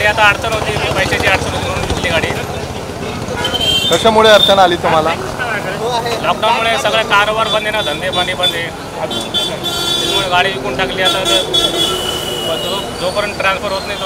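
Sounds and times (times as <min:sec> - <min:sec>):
man talking: 0:00.0 - 0:03.3, 0:03.9 - 0:14.0
street traffic: 0:00.0 - 0:14.0.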